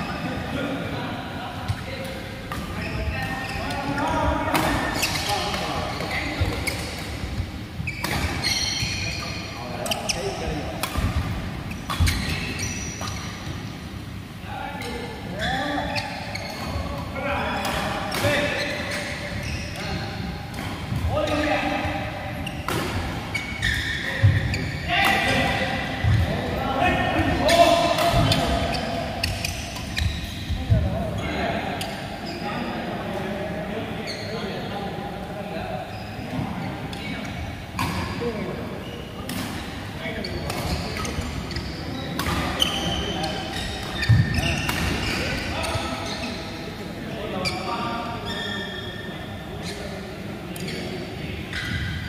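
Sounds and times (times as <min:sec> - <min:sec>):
players' voices: 0:00.0 - 0:52.0.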